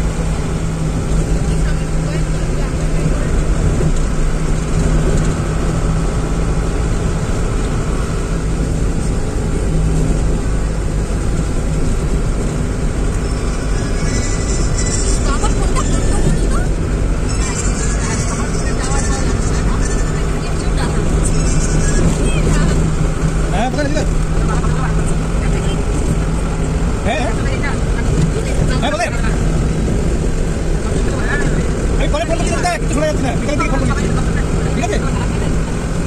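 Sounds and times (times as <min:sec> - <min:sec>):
car road and engine rumble: 0:00.0 - 0:36.0.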